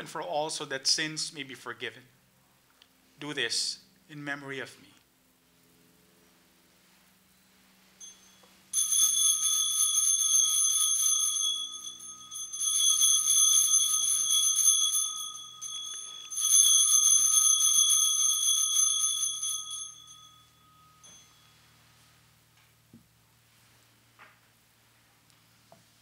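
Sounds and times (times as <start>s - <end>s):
altar bells ringing: 8.0s - 22.5s.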